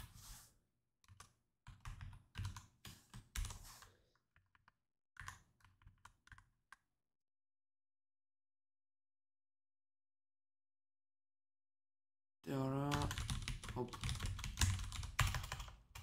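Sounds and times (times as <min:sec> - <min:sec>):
typing on computer keyboard: 0:01.1 - 0:03.6, 0:04.4 - 0:06.5, 0:12.9 - 0:16.0.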